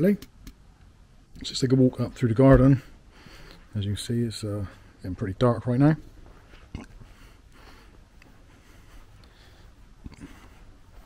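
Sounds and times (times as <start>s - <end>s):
faint footsteps: 6.0s - 11.0s.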